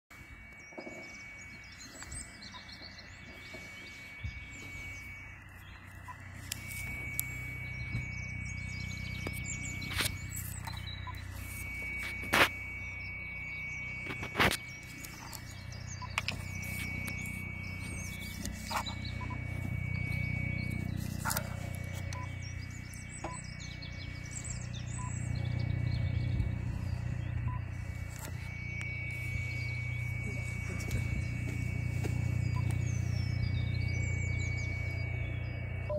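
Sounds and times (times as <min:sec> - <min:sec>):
birds chirping: 0:00.1 - 0:35.9
low hum: 0:00.1 - 0:35.9
steady high-pitched tone: 0:00.1 - 0:35.9.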